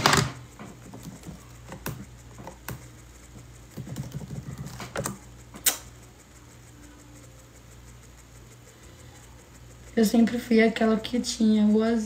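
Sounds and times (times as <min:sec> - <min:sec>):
short sharp click: 0:05.6 - 0:05.9.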